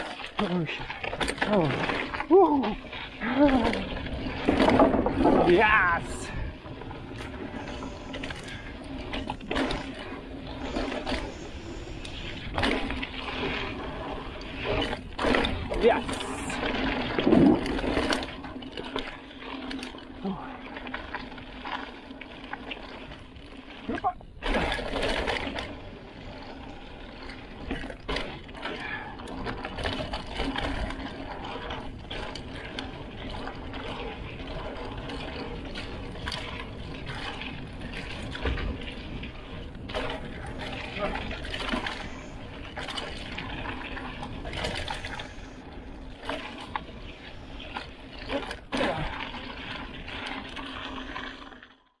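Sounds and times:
bike tyres rolling over dirt: 0.0s - 52.0s.

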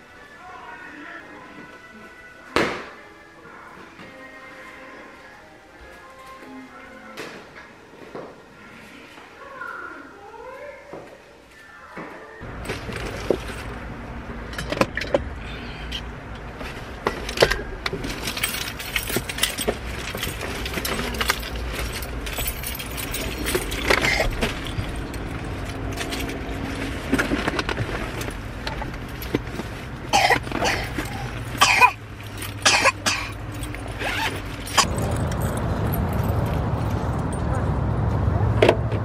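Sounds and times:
bags and gear being handled: 12.4s - 13.8s, 16.5s - 37.4s
loud steady rumble: 12.4s - 39.0s.

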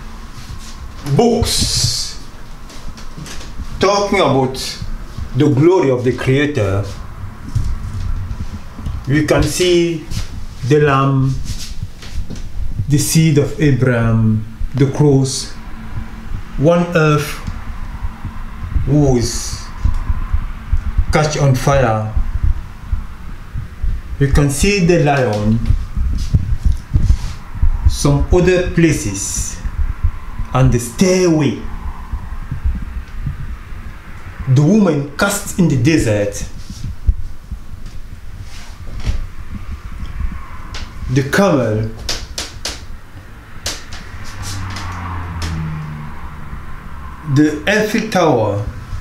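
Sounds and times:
low hum: 0.0s - 49.0s.

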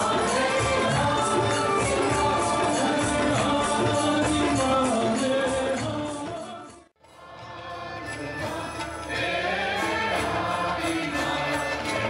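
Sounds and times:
group singing devotional song: 0.0s - 12.0s
instrumental accompaniment: 0.0s - 12.0s
light percussion beat: 0.0s - 12.0s.

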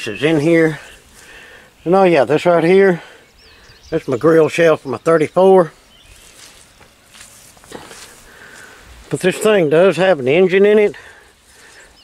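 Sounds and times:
faint rustling: 5.8s - 9.6s
light footsteps: 6.0s - 9.6s.

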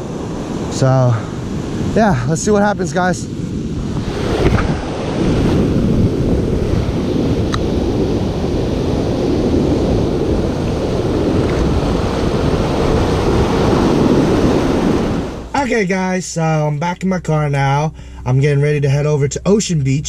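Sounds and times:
wind buffeting microphone: 0.0s - 15.5s
breaking surf: 0.0s - 16.5s.

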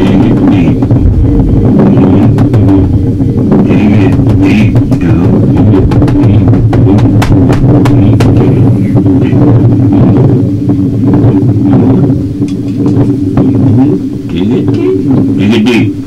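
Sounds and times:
low noise drone: 0.0s - 16.0s.

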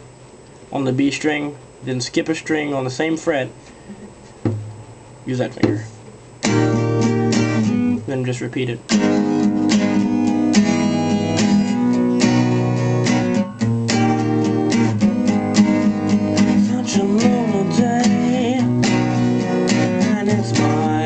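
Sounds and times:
acoustic guitar strumming: 3.8s - 21.0s.

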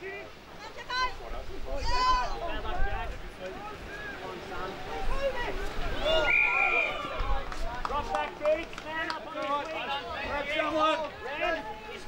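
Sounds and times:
people shouting short calls: 1.8s - 2.7s, 4.8s - 7.4s.

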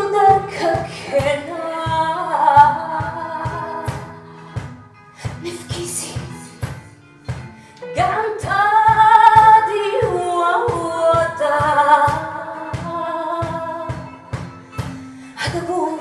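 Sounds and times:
woman singing: 0.0s - 6.8s, 7.8s - 16.0s
cajon beat: 0.0s - 16.0s
guitar: 0.0s - 16.0s.

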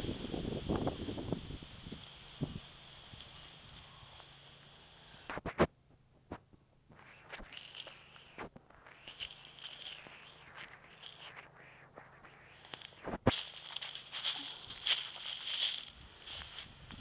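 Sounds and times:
footsteps through dry leaves: 7.2s - 17.0s.

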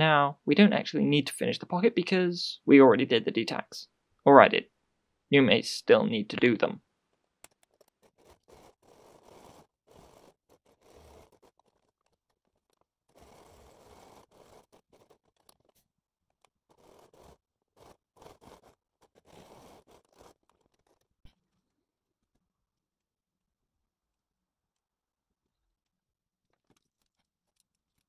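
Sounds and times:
sewing machine stitching: 7.4s - 21.2s.

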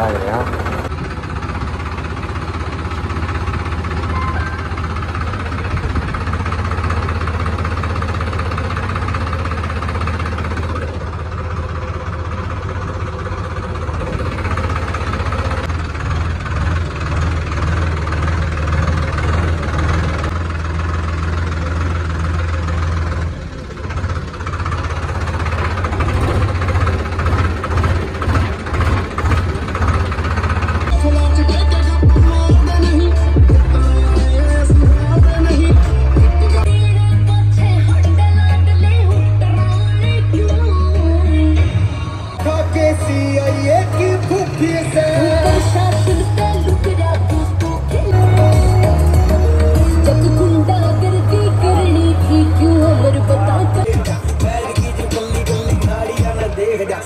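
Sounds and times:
vehicle engine droning: 0.0s - 57.0s.

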